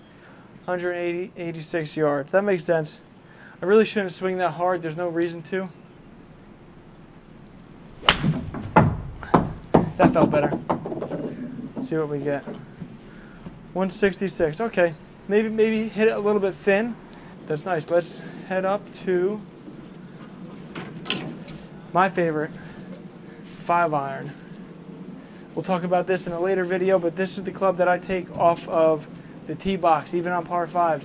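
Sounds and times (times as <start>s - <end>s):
golf club striking ball: 7.9s - 9.9s
light knocks: 8.0s - 13.6s.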